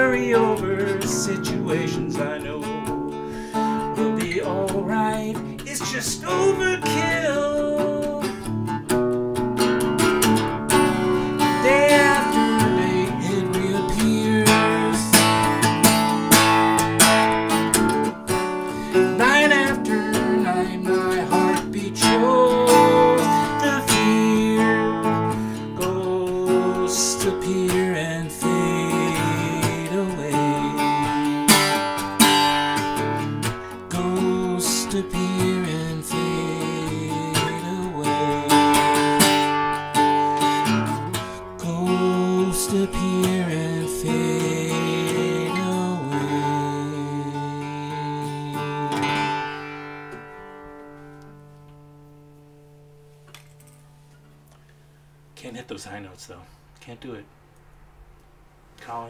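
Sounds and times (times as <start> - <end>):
acoustic guitar strumming: 0.0 - 56.2.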